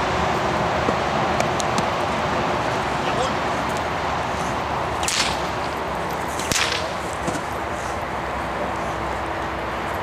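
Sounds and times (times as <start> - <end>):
whip crack: 5.0 - 7.5
whip swishing through air: 5.0 - 7.6.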